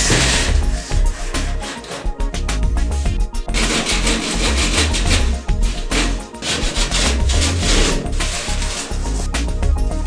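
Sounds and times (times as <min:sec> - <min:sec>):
hand saw rasping through plasterboard: 0:00.0 - 0:02.4, 0:03.5 - 0:09.5
background music with steady bass: 0:00.0 - 0:10.0.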